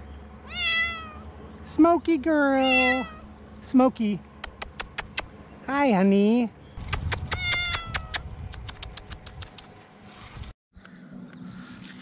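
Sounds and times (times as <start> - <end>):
cat meowing: 0.5 - 1.2, 2.6 - 3.2, 7.3 - 8.1
sharp clicks: 4.4 - 5.3, 6.8 - 9.7.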